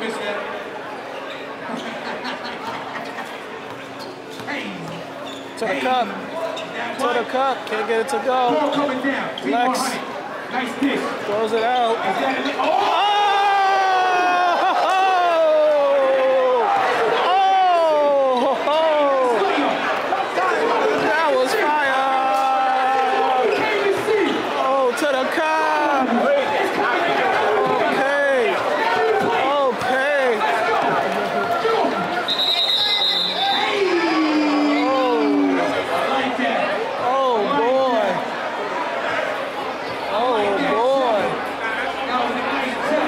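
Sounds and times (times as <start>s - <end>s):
crowd shouting and talking: 0.0s - 43.0s.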